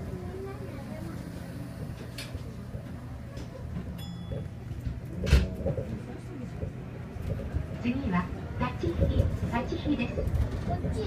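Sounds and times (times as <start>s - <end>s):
low murmuring voices: 0.0s - 11.0s
monorail running hum: 0.0s - 11.0s.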